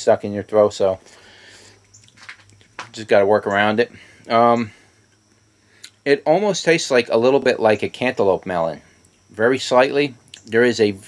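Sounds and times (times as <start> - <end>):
soft breath: 1.0 - 1.8
man speaking: 2.9 - 4.8, 6.1 - 11.0.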